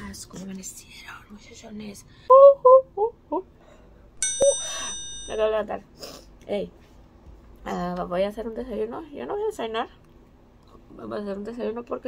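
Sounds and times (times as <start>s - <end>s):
bell-like ding effect: 4.2s - 5.5s.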